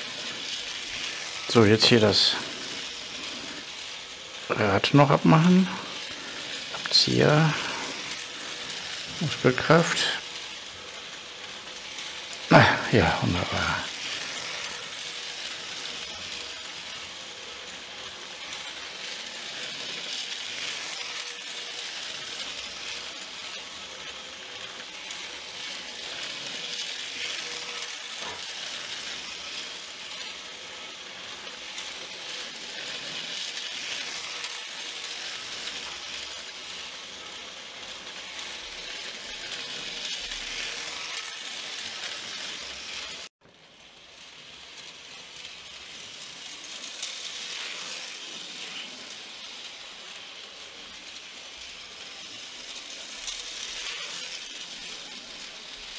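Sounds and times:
steady hiss: 0.0s - 55.9s.

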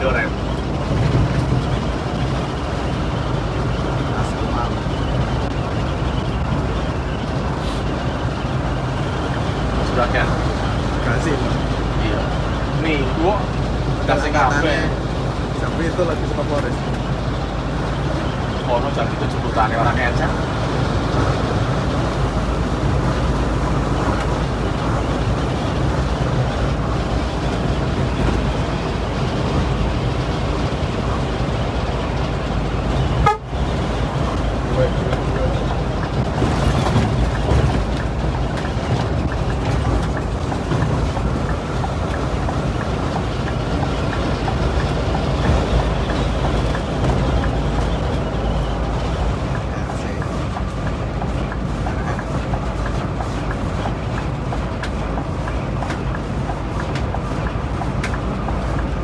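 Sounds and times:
diesel engine drone: 0.0s - 59.0s
tyre and road noise: 0.0s - 59.0s.

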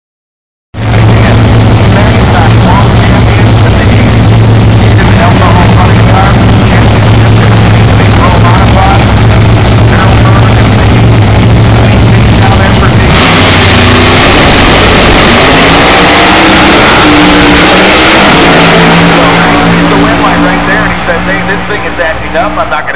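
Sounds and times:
drag racing car engine: 0.7s - 22.9s.

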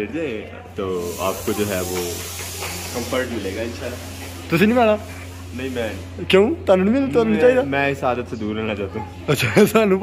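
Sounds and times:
steady hiss: 0.8s - 6.7s.

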